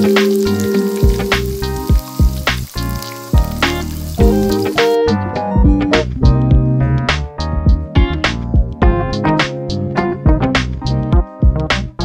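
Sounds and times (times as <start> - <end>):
food sizzling in oil: 0.0 - 5.0
background music with regular beat: 0.0 - 12.0.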